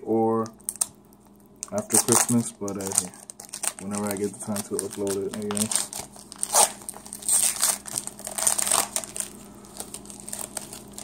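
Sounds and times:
plastic wrapper crinkling: 0:00.4 - 0:11.0.

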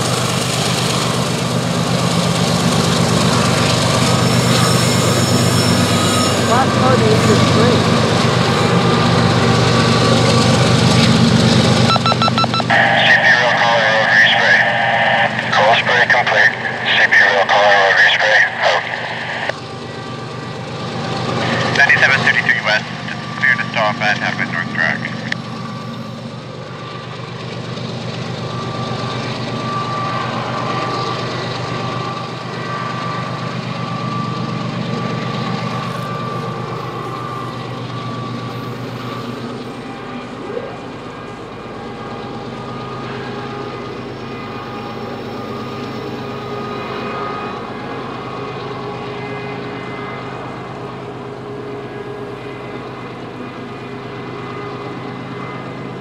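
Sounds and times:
diesel locomotives running: 0:00.0 - 0:56.0
person talking: 0:12.7 - 0:19.2, 0:21.4 - 0:25.4.

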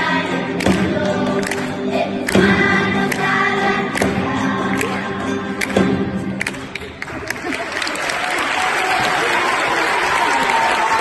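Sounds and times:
children's choir singing carol: 0:00.0 - 0:06.4
acoustic guitars: 0:00.0 - 0:07.3.

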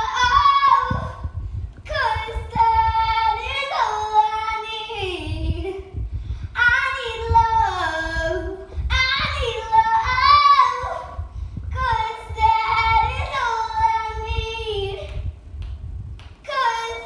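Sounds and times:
girl singing unaccompanied: 0:00.0 - 0:15.4, 0:16.4 - 0:17.0
girl breathing: 0:01.2 - 0:01.9, 0:05.8 - 0:06.6, 0:08.6 - 0:08.9, 0:11.0 - 0:11.8.

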